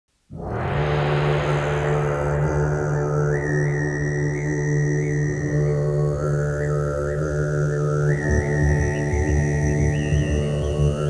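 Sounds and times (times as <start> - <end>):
low drone with held tones: 0.3 - 11.0.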